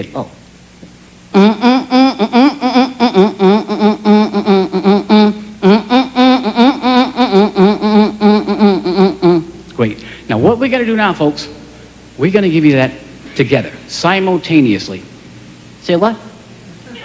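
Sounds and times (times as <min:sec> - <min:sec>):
man humming buzzy tune: 0:01.3 - 0:09.6.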